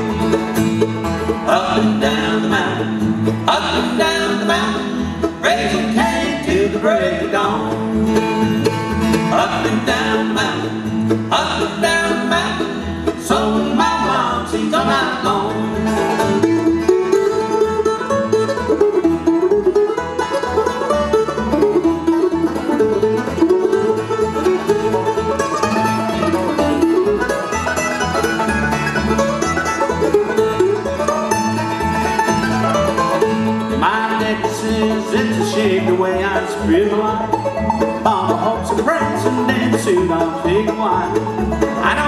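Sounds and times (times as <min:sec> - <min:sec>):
bluegrass band playing: 0:00.0 - 0:42.0.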